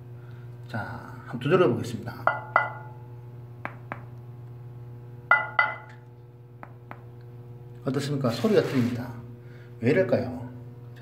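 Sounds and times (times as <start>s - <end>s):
hand knocking on ceramic tile: 3.6s - 4.1s.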